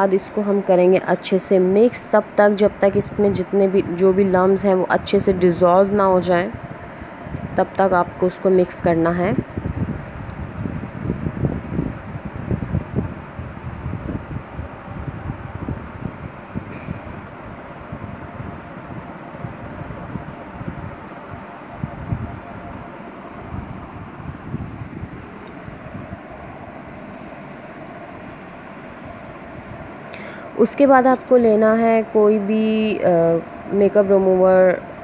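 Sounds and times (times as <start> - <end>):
steady background hum: 0.0 - 35.0.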